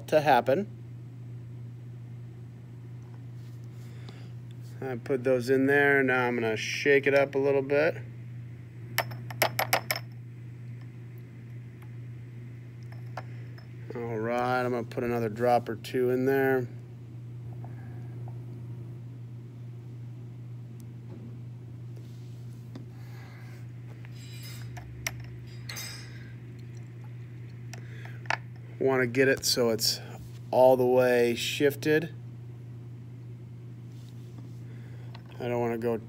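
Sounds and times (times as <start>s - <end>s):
steady low hum: 0.0s - 36.0s
glassware clinking: 24.2s - 26.3s.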